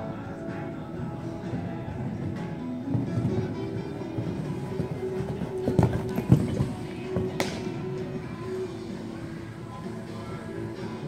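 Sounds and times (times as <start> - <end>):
background music: 0.0 - 11.0
horse hoofbeats on sand: 0.5 - 11.0.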